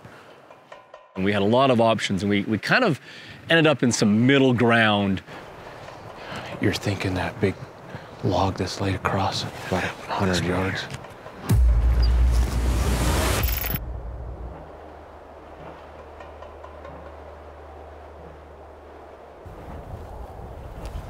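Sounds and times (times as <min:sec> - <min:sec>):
faint low drone: 0:11.5 - 0:19.4
wind gusting over microphone: 0:13.4 - 0:21.0.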